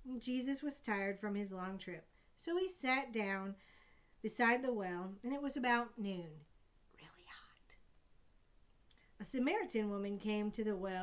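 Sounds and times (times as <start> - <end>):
faint breath: 3.6 - 4.2.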